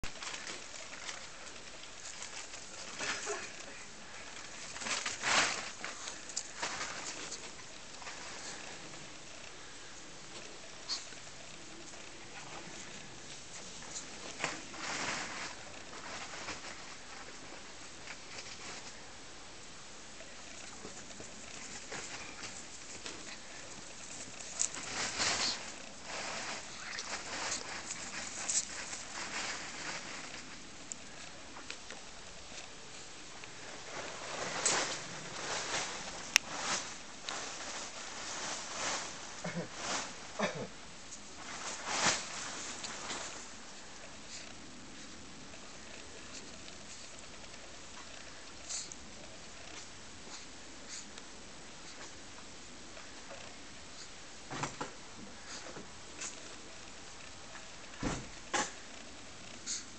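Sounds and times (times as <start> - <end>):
rustling and scuffling on grass: 0.0 - 59.9.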